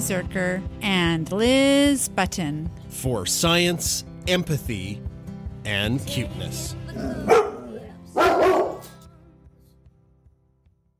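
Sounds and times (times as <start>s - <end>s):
background music: 0.0s - 10.9s
dog barking: 7.0s - 9.0s.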